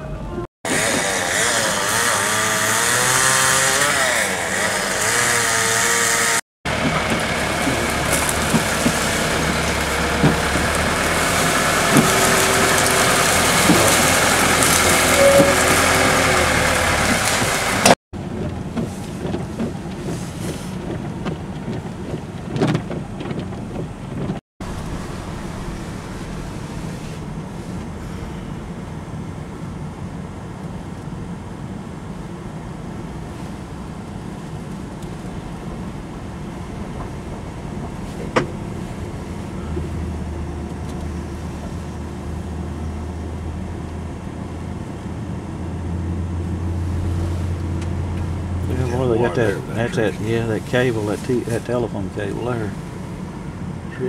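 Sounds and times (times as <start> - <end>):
road noise inside moving car: 0.0 - 54.0
backhoe diesel engine running: 6.7 - 20.3, 24.6 - 30.4, 34.6 - 54.0.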